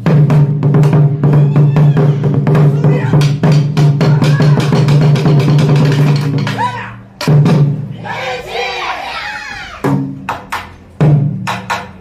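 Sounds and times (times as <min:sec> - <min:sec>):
barrel drums struck with sticks: 0:00.0 - 0:01.4, 0:02.3 - 0:06.6, 0:09.8 - 0:12.0.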